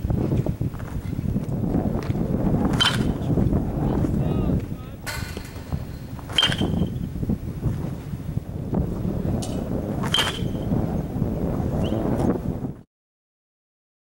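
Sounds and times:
wind on microphone: 0:00.0 - 0:12.9
metal bat hitting ball: 0:02.6 - 0:03.4, 0:05.0 - 0:07.1, 0:09.4 - 0:10.6.

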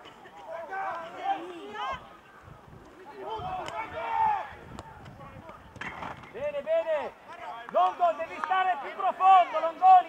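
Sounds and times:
voices shouting: 0:00.3 - 0:05.0, 0:06.8 - 0:10.0.

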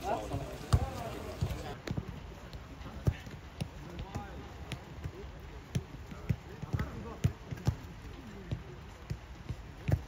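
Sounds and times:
faint voices: 0:00.0 - 0:09.3
football thuds: 0:00.0 - 0:10.0.

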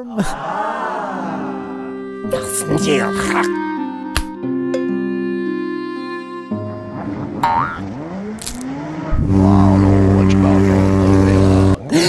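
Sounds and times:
cartoon jet ski engine drone: 0:01.3 - 0:12.0.

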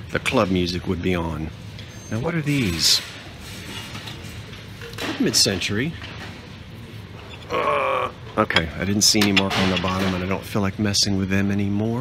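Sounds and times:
low background hum: 0:00.0 - 0:12.0
man grunting: 0:07.4 - 0:08.3.

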